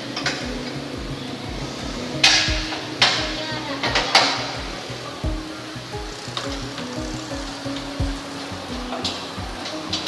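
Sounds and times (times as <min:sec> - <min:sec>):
music with steady beat: 0:00.0 - 0:10.0.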